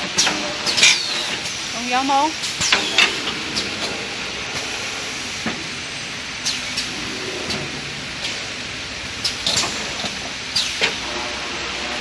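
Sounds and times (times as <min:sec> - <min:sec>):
air hisses and clacks: 0:00.0 - 0:12.0
machine hum: 0:00.4 - 0:12.0.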